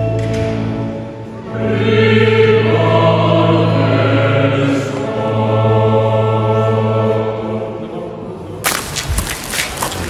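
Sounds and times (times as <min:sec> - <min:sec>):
choir singing held chords: 0:01.2 - 0:08.6.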